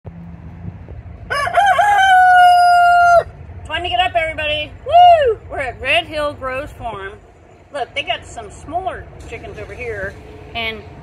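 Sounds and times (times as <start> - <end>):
rooster crowing: 1.3 - 3.4.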